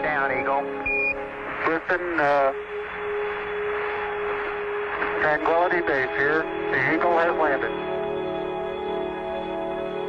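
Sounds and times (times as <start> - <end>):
radio link hiss: 0.0 - 7.7
steady tone: 0.0 - 10.0.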